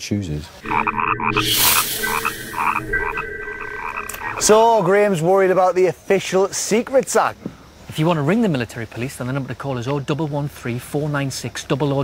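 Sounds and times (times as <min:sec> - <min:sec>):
frogs croaking: 0:00.6 - 0:04.9
steady high tone: 0:00.6 - 0:05.4.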